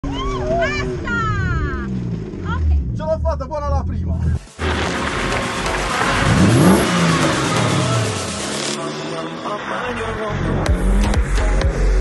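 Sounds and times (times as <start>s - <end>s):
car engine revving: 0.3s - 12.0s
electronic music with heavy bass: 3.9s - 12.0s
broad noisy rush: 4.4s - 10.0s.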